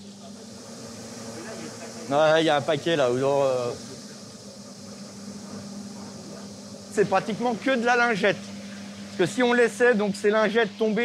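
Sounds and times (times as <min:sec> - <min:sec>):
low machine hum with hiss: 0:00.0 - 0:11.0.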